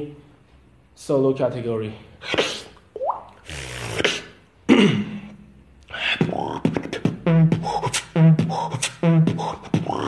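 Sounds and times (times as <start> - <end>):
beatboxing vocal effects: 2.2 - 4.8, 5.8 - 10.0.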